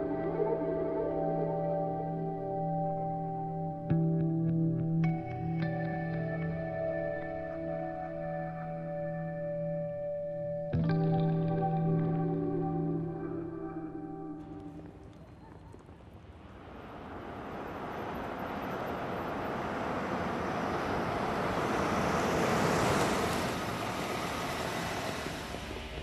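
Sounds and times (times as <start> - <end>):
cars engines and tyres rushing: 14.4 - 26.0.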